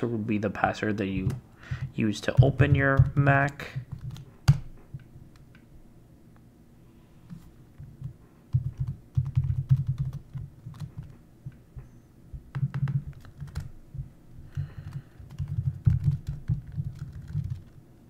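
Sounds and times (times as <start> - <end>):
laptop keyboard typing: 2.3 - 4.7, 8.0 - 11.2, 12.5 - 17.8.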